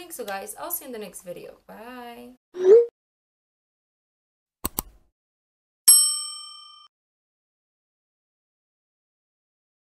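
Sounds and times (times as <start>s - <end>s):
bell-like ding: 5.9s - 6.9s.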